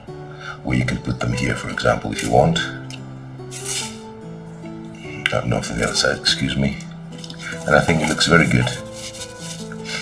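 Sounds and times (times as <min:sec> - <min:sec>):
sustained background music notes: 0:00.0 - 0:10.0
brief hiss: 0:03.5 - 0:04.1.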